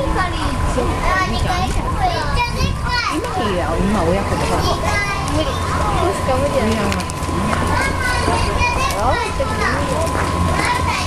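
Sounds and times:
children chattering and calling out: 0:00.0 - 0:11.0
steady low hum: 0:00.0 - 0:11.0.

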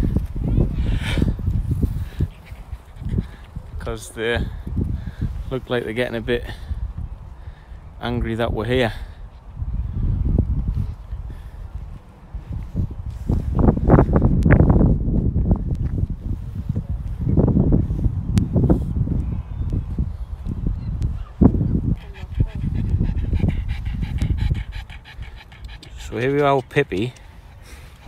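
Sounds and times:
dog panting hard: 0:00.8 - 0:03.9, 0:21.7 - 0:28.0
steady low rumble: 0:09.6 - 0:26.3.

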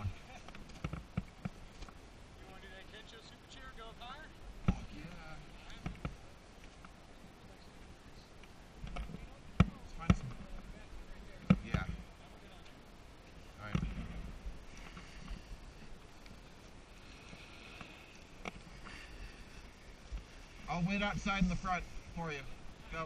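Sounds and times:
ski gear clicking and knocking: 0:00.4 - 0:02.0.

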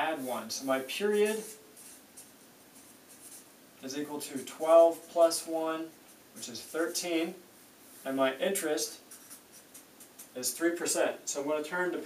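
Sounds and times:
marker scratching on paper: 0:00.0 - 0:03.5, 0:04.3 - 0:07.2, 0:07.8 - 0:10.4.

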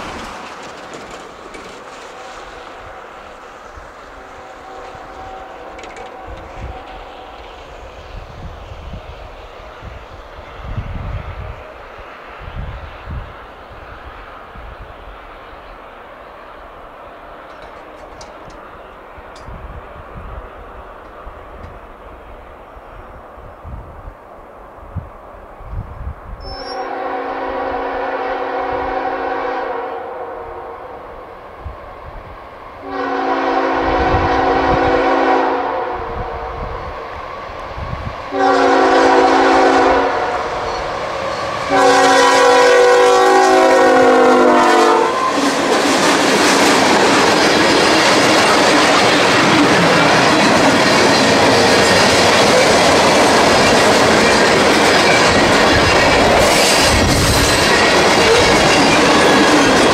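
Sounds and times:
train wheels clacking over rail joints: 0:00.0 - 0:03.4, 0:04.7 - 0:07.7, 0:17.4 - 0:18.7, 0:45.2 - 0:59.9
locomotive air horn blasts: 0:04.0 - 0:07.7, 0:26.4 - 0:31.0, 0:32.8 - 0:36.7, 0:38.3 - 0:40.8, 0:41.4 - 0:45.5.

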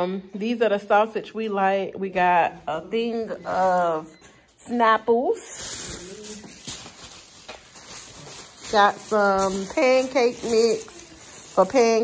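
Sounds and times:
plastic bags rustling: 0:03.0 - 0:12.0.

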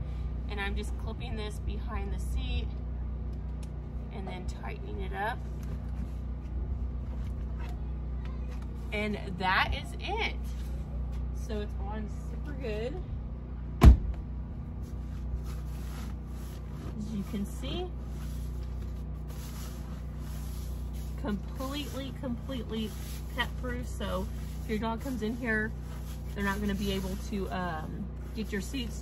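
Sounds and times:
steady low hum: 0:00.0 - 0:29.0
steady low rumble: 0:00.0 - 0:29.0
fabric rustling: 0:14.8 - 0:29.0.

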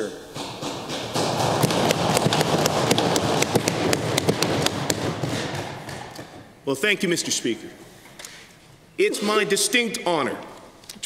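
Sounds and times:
thumping on wooden desks: 0:00.0 - 0:06.6.

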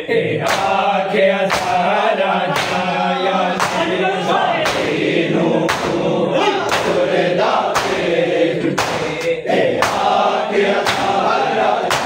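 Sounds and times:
men chanting in chorus: 0:00.0 - 0:12.0
hands slapping chests in unison: 0:00.4 - 0:03.0, 0:03.6 - 0:04.0, 0:04.6 - 0:12.0.

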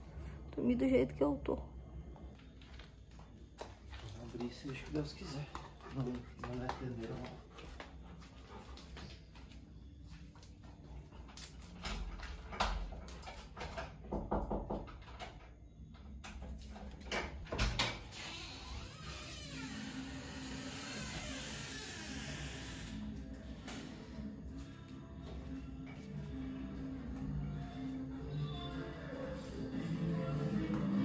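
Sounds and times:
music from radio speakers: 0:22.5 - 0:31.0.

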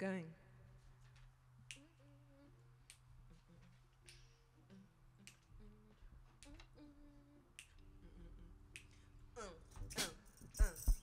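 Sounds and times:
faint finger snaps: 0:01.6 - 0:02.2, 0:02.8 - 0:03.1, 0:04.0 - 0:05.6, 0:06.3 - 0:07.9, 0:08.7 - 0:09.1.

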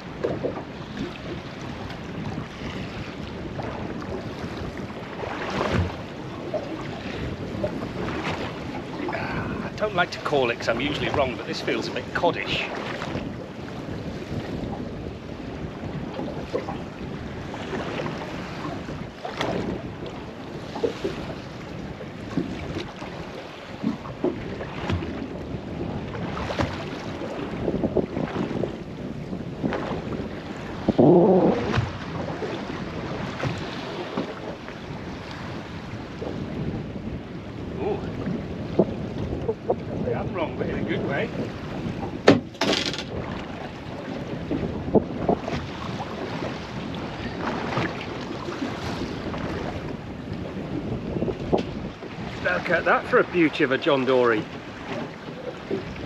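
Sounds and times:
wind on microphone: 0:00.0 - 0:53.7, 0:54.4 - 0:56.0
water lapping against boat hull: 0:00.0 - 0:56.0.

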